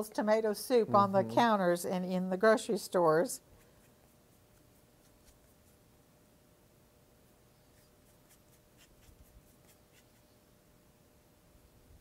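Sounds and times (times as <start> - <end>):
paintbrush scratching on canvas: 3.6 - 5.8, 7.6 - 10.4.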